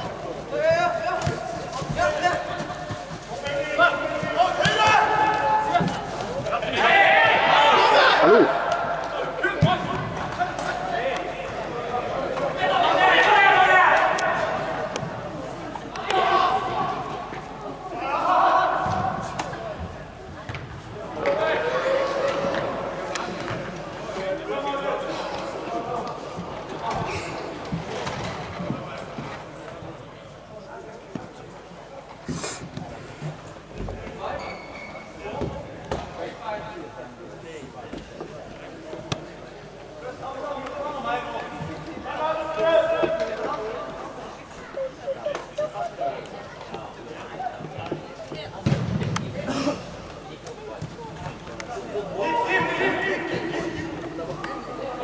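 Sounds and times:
people shouting: 6.7 - 8.8.

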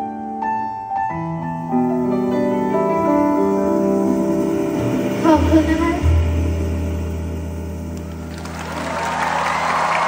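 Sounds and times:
audience applause: 8.0 - 10.0.

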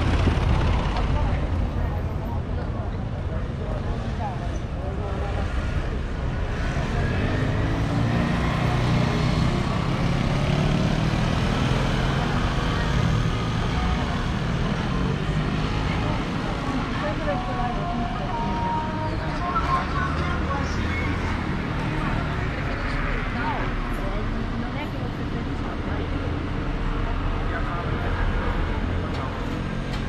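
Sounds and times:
people's voices: 0.0 - 30.0
steady road noise: 0.0 - 30.0
vehicle engine: 0.0 - 30.0.

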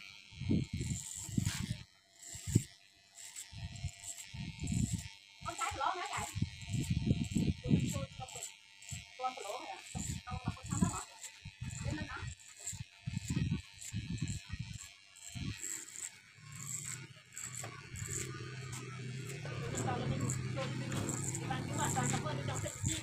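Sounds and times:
electric hair clipper cutting hair: 0.0 - 23.0.

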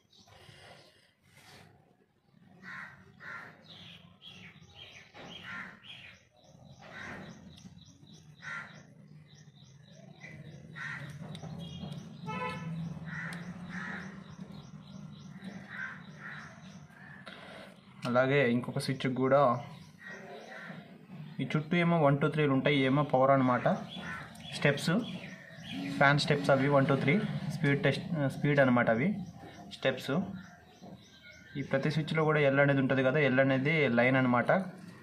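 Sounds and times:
birds calling: 0.0 - 35.0.

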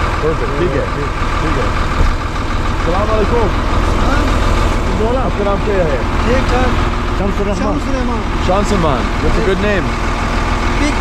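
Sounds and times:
diesel truck engine idling: 0.0 - 11.0
men talking: 0.0 - 11.0.

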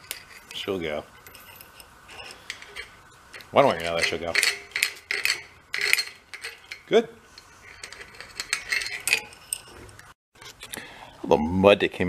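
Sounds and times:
roller chain clinking and rattling: 0.0 - 10.2.

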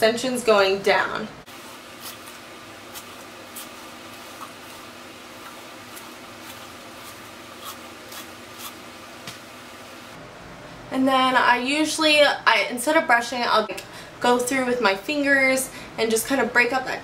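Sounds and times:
room hum: 0.0 - 17.0
hairbrush rubbing through hair: 1.5 - 8.9.

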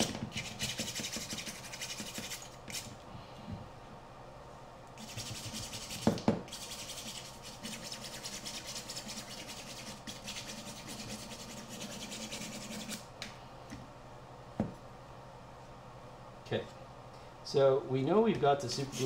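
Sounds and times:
nail file sanding carbon fiber: 0.0 - 2.9, 5.0 - 13.0.

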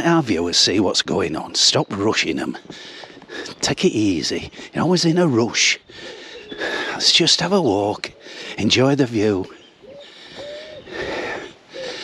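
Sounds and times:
man's breathy exhale: 10.0 - 12.0.

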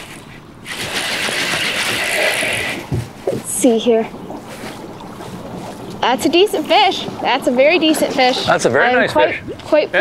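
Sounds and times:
fly reel drag buzzing: 0.6 - 2.9.

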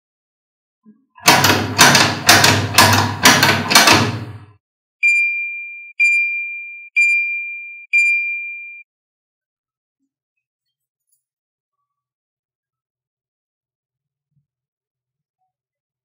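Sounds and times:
high electronic dings: 5.0 - 8.8.

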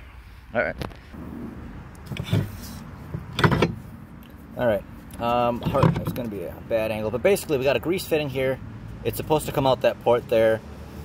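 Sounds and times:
steel parts scraping and knocking: 2.0 - 3.8.

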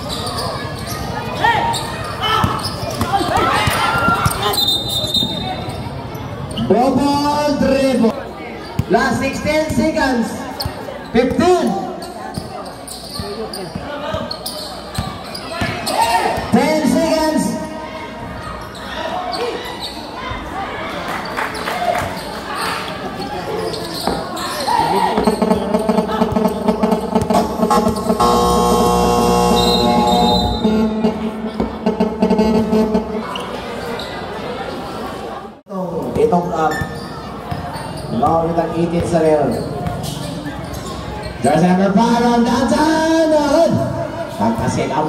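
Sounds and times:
loud held multi-pitch tone: 25.3 - 33.2.

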